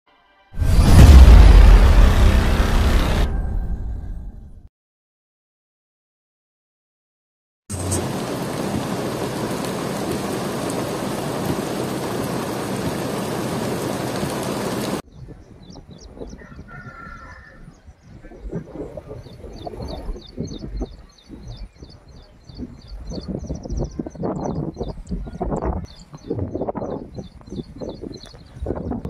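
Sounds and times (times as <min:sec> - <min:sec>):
floodwater roaring: 0:07.7 - 0:15.0
wind buffeting microphone: 0:14.2 - 0:29.0
small birds chirping: 0:15.1 - 0:29.0.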